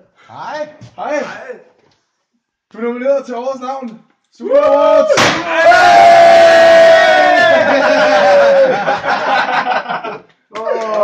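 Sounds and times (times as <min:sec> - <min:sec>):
sharp bang: 0:05.2 - 0:05.5.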